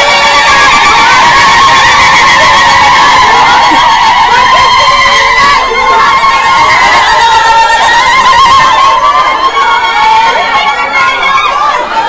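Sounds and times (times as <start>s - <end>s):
crowd noise: 0.0s - 12.0s
women ululating: 0.0s - 12.0s.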